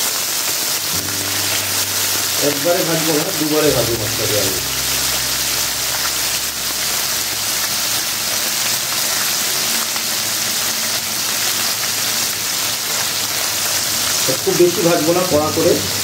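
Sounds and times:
fish sizzling in oil: 0.0 - 16.0.

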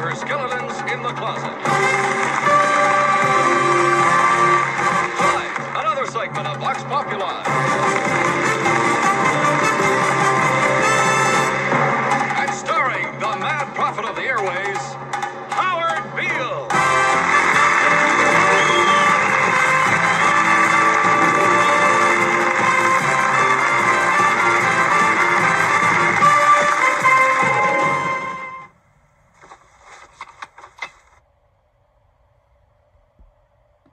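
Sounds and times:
loud theme music: 0.0 - 28.7
studio audience applauding: 1.6 - 6.3, 7.0 - 12.6, 16.7 - 28.4.

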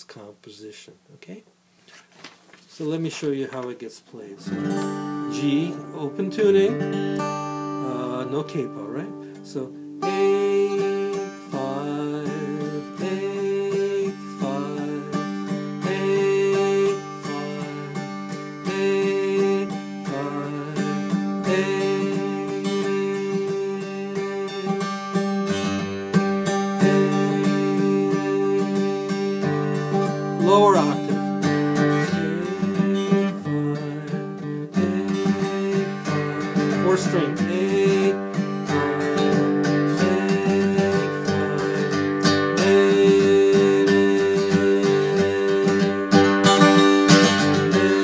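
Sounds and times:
acoustic guitar melody: 2.8 - 48.0.

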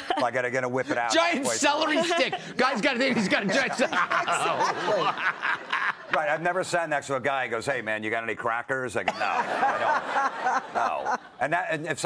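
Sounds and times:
people laughing hard: 1.0 - 6.4, 9.1 - 11.4.

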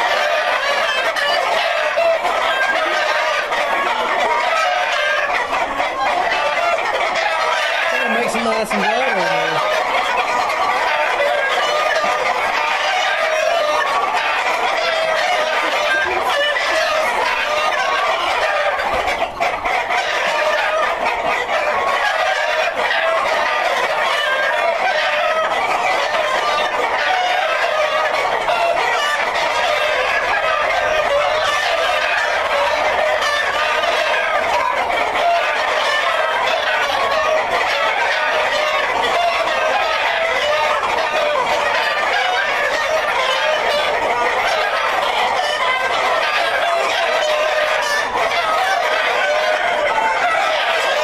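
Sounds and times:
chickens clucking and calling: 0.0 - 51.0.

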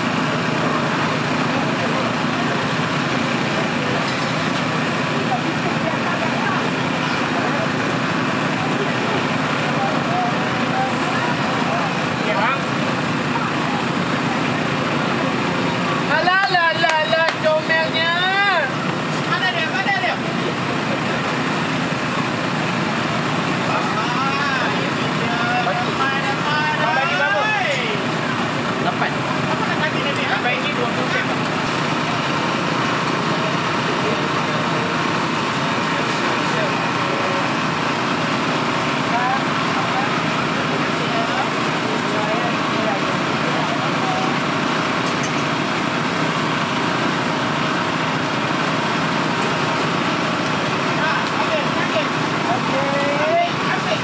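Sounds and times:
people talking: 0.0 - 54.0.

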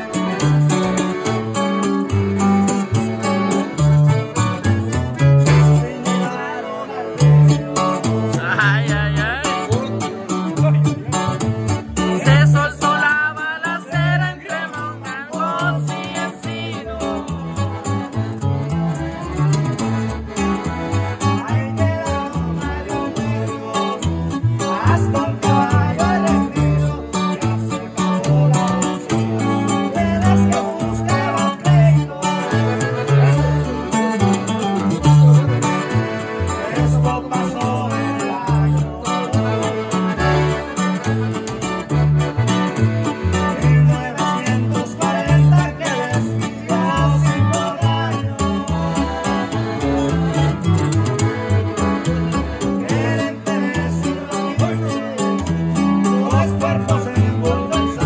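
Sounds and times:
bajo sexto guitar: 0.0 - 58.0
button accordion: 0.0 - 58.0
plucked upright bass: 0.0 - 58.0.

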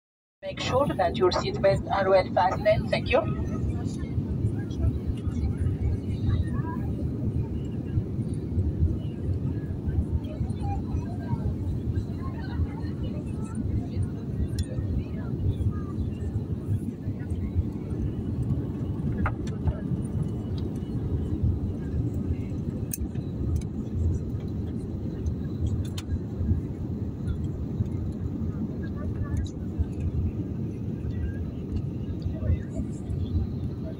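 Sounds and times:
airliner engine and airflow rumble: 0.4 - 33.9.

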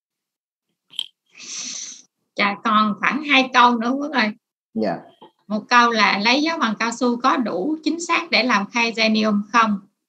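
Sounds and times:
mouth click: 0.9 - 1.1.

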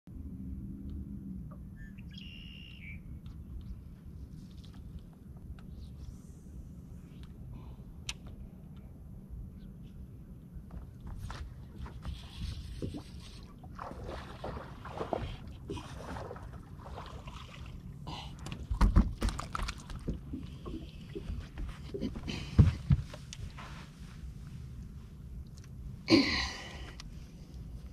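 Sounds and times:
low steady rumble: 0.1 - 27.9.

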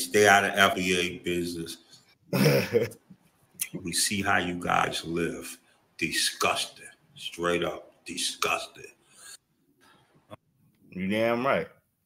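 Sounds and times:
man clearing his throat: 2.4 - 2.9.

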